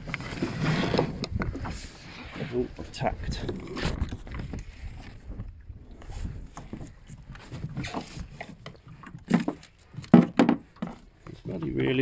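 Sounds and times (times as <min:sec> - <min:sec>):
knocks on wooden boat floor: 0:10.1 - 0:10.6.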